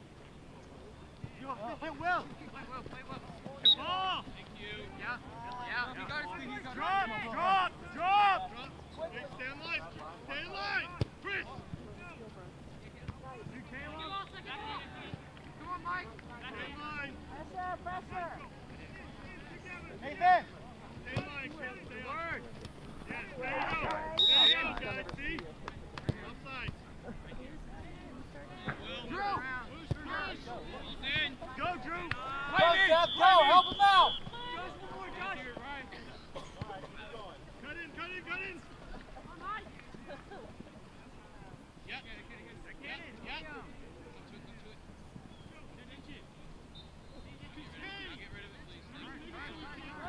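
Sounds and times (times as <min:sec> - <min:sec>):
whistle blasts: 0:03.6 - 0:03.9, 0:24.2 - 0:24.7, 0:32.6 - 0:34.4
distant shouting voices: 0:28.8 - 0:36.0.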